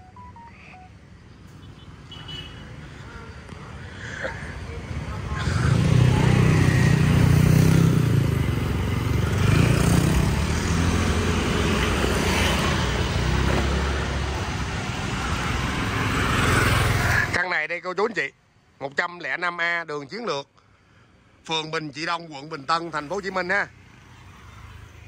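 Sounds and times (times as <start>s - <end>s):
traffic noise: 0.0s - 25.0s
motorbikes passing by: 1.9s - 17.4s, 22.5s - 25.0s.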